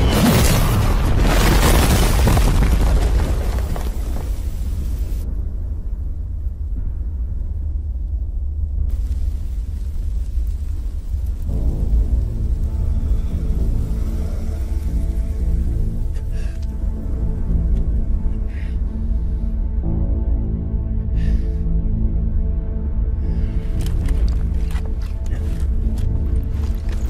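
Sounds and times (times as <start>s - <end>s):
deep steady rumble: 4.6s - 27.0s
music with sustained notes: 4.9s - 27.0s.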